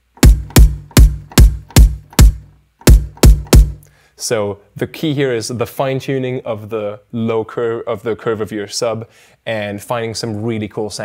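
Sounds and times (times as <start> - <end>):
electronic kick drum hits: 0.0 - 3.8.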